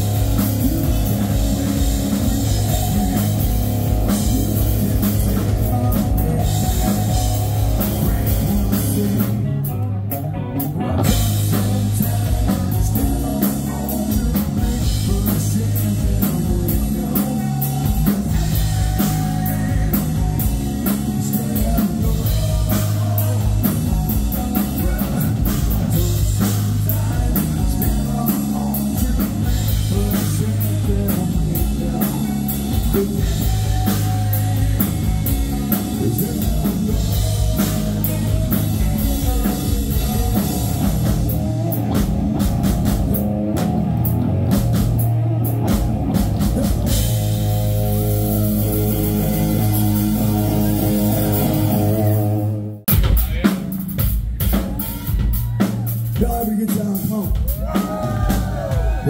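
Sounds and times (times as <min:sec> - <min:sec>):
lead vocal singing: 0:00.0 - 0:09.9, 0:10.6 - 0:43.5, 0:46.3 - 0:52.6
bass guitar: 0:00.0 - 0:59.0
distorted electric guitars: 0:00.0 - 0:59.0
drum kit: 0:00.0 - 0:59.0.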